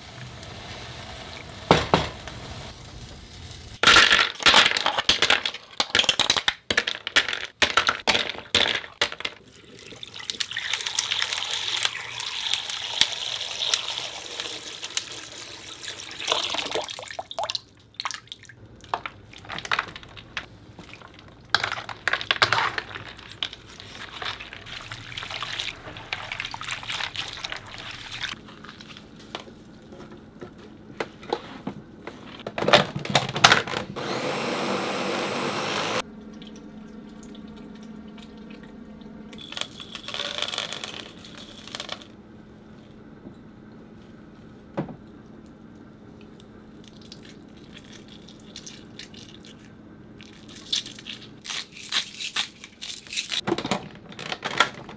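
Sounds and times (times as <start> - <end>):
water splashing and sloshing: 15.8 - 30.2
ice cubes clinking into bowl: 39.4 - 42.1.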